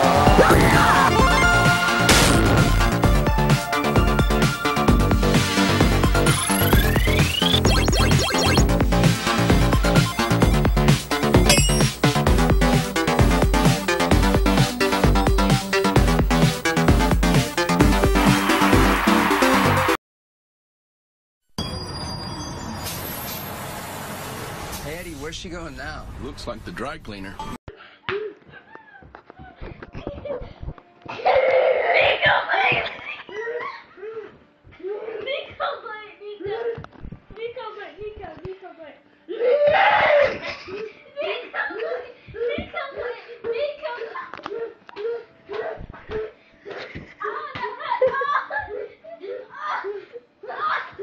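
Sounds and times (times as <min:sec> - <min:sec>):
children laughing: 0:28.1 - 0:35.6, 0:39.4 - 0:51.0.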